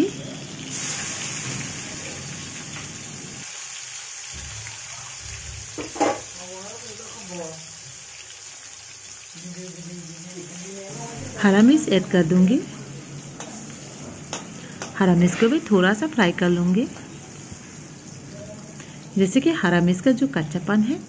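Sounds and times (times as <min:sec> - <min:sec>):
onion sizzling in hot oil: 0:00.0 - 0:21.0.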